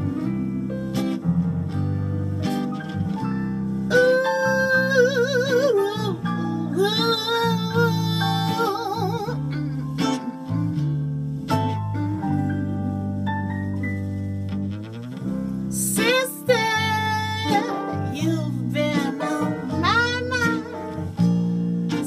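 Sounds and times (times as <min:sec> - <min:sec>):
guitar accompaniment: 0:00.0 - 0:22.0
woman singing with vibrato: 0:03.9 - 0:10.7, 0:15.7 - 0:21.1.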